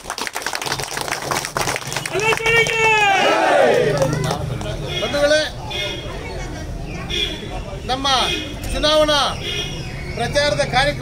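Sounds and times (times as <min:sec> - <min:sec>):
people clapping: 0:00.0 - 0:05.0
crowd shouting a slogan: 0:02.2 - 0:04.2.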